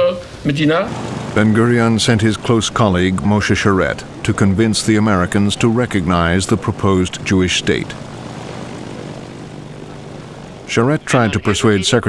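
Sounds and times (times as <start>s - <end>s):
propeller airplane engines humming: 0.9s - 12.0s.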